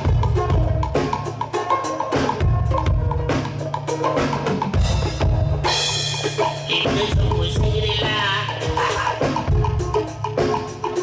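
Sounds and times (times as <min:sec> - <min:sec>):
drum kit steady beat: 0:00.0 - 0:11.0.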